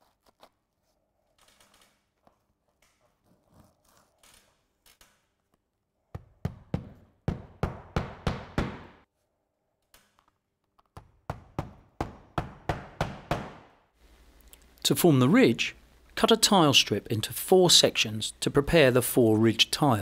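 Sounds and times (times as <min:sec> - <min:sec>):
hammer driving nails: 0:06.2 - 0:09.0, 0:10.9 - 0:13.8.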